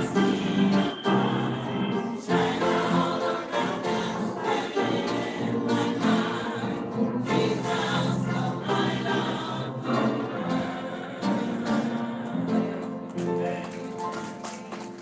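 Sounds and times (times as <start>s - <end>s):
choir singing gospel: 0.0s - 15.0s.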